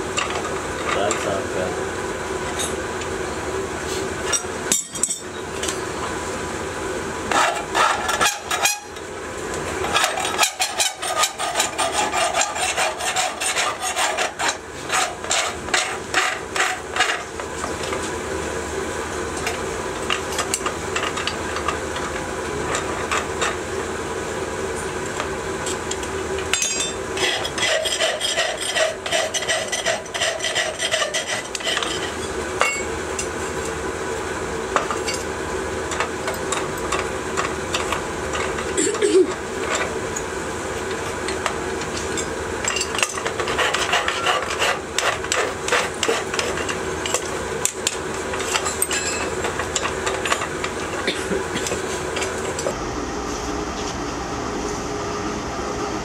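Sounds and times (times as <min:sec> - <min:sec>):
steady hum: 0:00.0 - 0:56.0
hand file rasping on metal: 0:07.3 - 0:08.9, 0:09.9 - 0:17.2, 0:27.2 - 0:32.2, 0:43.1 - 0:47.2.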